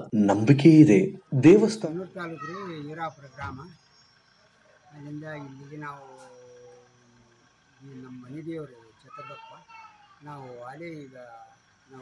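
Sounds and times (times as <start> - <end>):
elderly man speaking: 0.0 - 3.8, 4.9 - 6.9, 7.8 - 9.6, 10.2 - 12.0.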